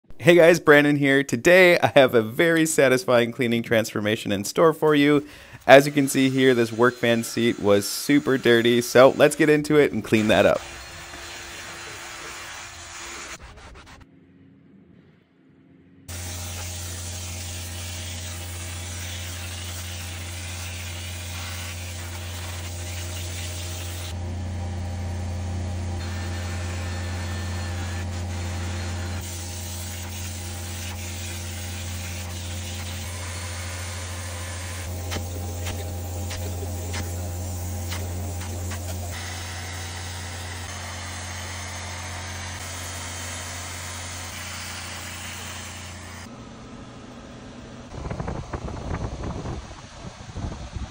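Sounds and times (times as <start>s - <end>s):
extractor motor hum: 4.2s - 14.0s, 16.0s - 50.9s
hiss of spray and suction: 10.2s - 14.0s, 16.1s - 24.1s, 28.1s - 39.4s.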